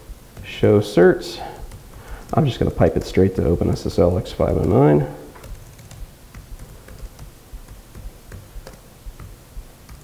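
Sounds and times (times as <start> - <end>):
laptop keyboard typing: 0.0 - 10.0.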